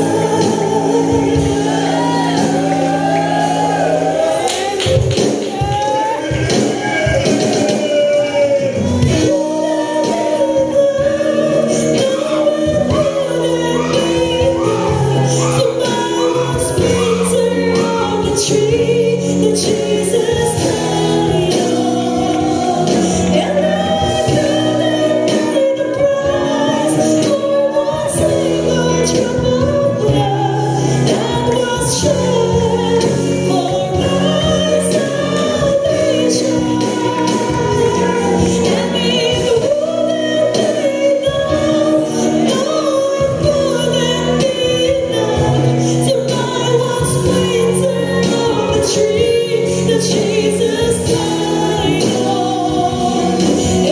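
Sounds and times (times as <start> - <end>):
choir singing gospel song: 0.0 - 53.9.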